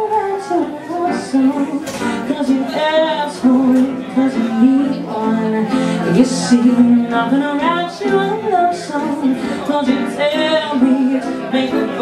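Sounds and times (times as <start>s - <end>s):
grand piano accompaniment: 0.0s - 12.0s
woman singing: 0.0s - 12.0s.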